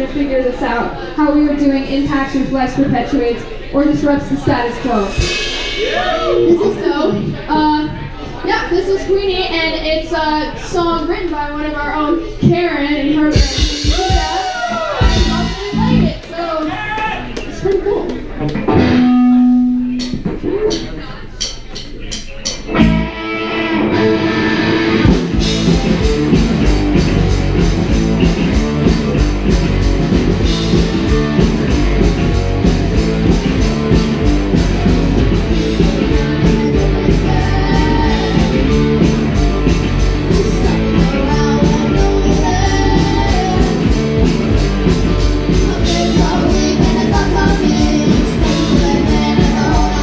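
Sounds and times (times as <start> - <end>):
rock band playing: 3.8 - 8.1, 13.2 - 16.4, 18.1 - 50.0
drum and cymbal hits: 5.0 - 7.4, 13.3 - 16.4, 25.0 - 50.0
electric guitar notes: 18.4 - 20.8, 22.7 - 50.0.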